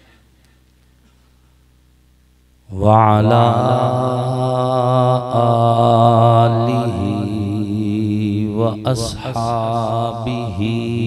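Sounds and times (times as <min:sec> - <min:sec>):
man chanting into microphone: 0:02.7 - 0:11.0.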